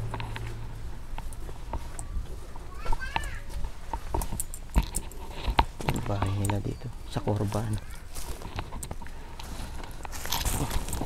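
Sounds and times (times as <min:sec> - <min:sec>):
footsteps on dirt and stone path: 0:00.0 - 0:11.0.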